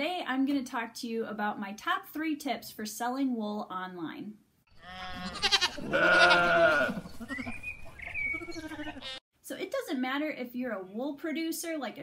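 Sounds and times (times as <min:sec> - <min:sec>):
sheep bleating: 0:04.7 - 0:07.0, 0:08.4 - 0:09.2.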